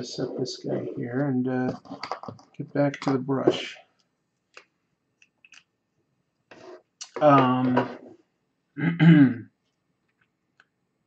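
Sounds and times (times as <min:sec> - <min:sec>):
man clearing his throat: 0:08.8 - 0:09.4.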